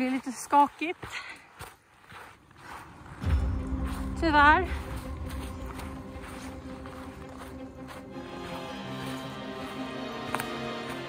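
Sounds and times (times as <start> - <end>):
music with slow held notes: 3.2 - 11.0.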